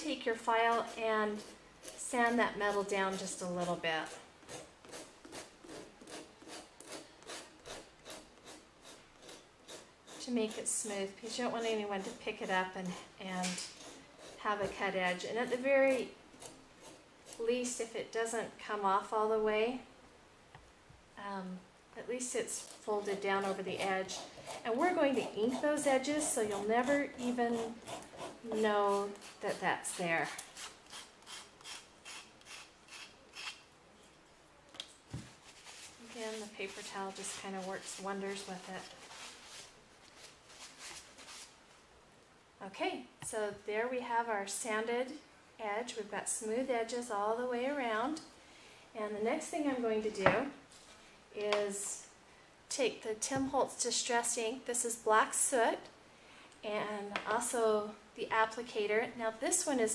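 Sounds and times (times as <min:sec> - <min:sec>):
nail file rasping on metal edge: 0:04.0 - 0:10.6, 0:22.6 - 0:33.6.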